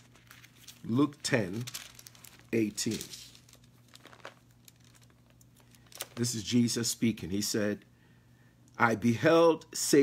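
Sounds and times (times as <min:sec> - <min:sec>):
thin pages rustling: 0:00.0 - 0:06.4.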